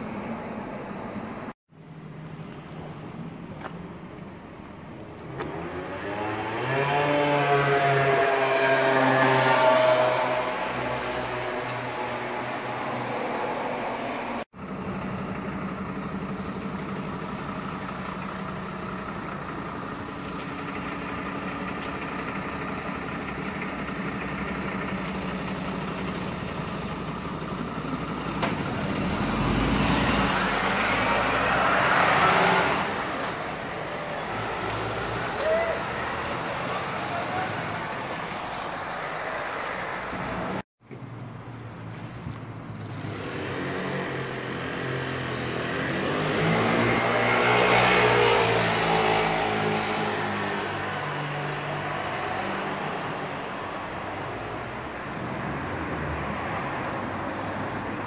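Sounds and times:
street traffic: 0.0 - 58.0
engine humming: 0.7 - 40.6
vehicle passing: 5.3 - 14.4, 42.8 - 58.0.

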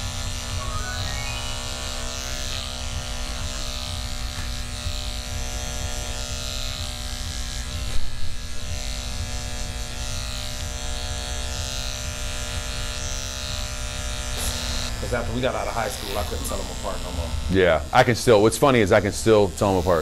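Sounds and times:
electric hair clippers running: 0.0 - 20.0.

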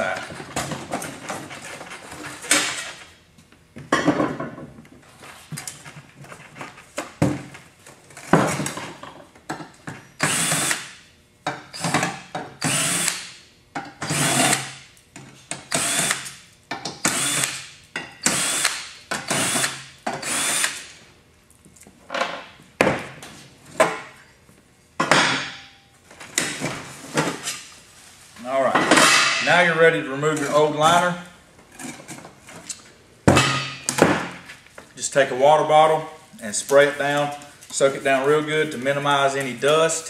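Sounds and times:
cordless drill bursts: 10.2 - 10.9, 12.6 - 13.3, 14.1 - 14.8, 15.7 - 16.3, 17.1 - 17.6, 18.2 - 20.8.

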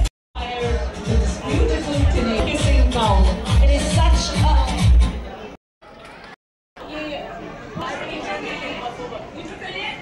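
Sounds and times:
indistinct chatter in a hall: 0.4 - 10.0.

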